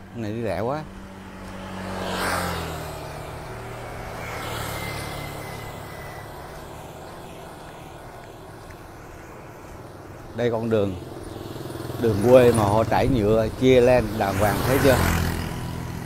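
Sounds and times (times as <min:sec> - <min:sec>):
small motorbike engines passing: 0:00.0 - 0:16.0.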